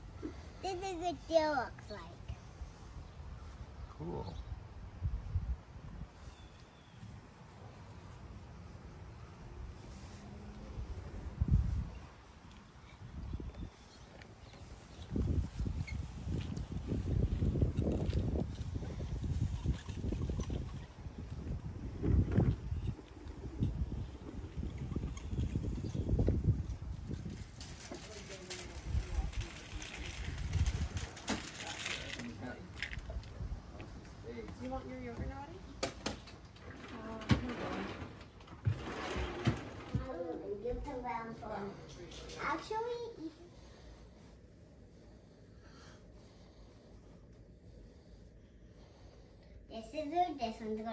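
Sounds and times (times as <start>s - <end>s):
wind buffeting microphone: 4.4s - 6.3s, 10.7s - 12.3s, 12.9s - 31.3s
toy stroller rolling over paving: 14.2s - 33.1s, 36.5s - 41.2s.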